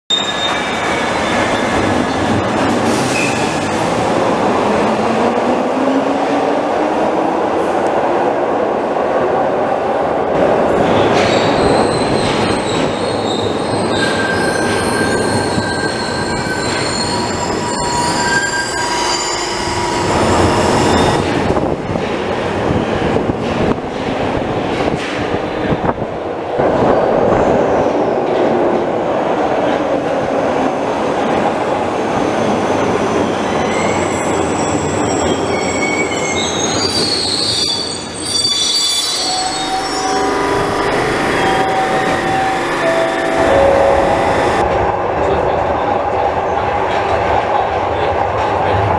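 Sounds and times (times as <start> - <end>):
train wheels squealing: 0.1 - 1.9, 11.2 - 21.4, 32.6 - 44.6
subway train rumble: 0.1 - 48.9.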